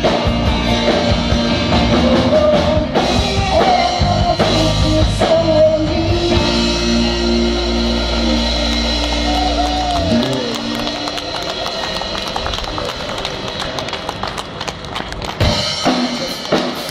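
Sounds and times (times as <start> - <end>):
electric guitar and bass chord: 0.0 - 12.8
person singing: 1.7 - 11.9
audience applause: 7.4 - 16.9.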